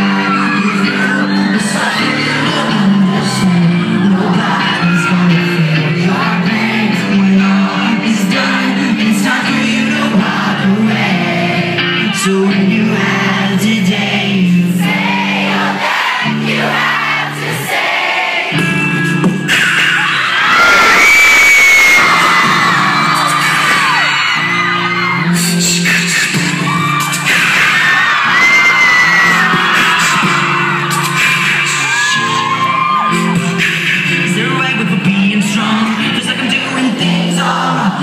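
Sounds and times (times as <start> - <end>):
bass guitar: 0.0 - 17.6, 18.6 - 38.0
electric guitars: 0.0 - 17.7, 18.5 - 38.0
high male lead vocal: 0.0 - 20.9, 22.0 - 38.0
drums: 18.6 - 35.8.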